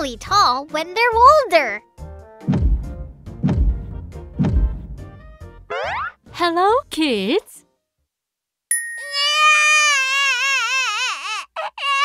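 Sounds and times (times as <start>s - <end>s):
thin high tone: 8.7s - 9.5s
cartoon baby crying: 9.0s - 12.0s.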